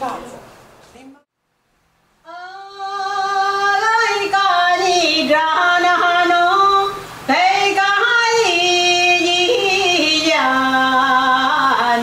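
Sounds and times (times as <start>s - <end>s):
woman singing unaccompanied: 2.2s - 12.0s.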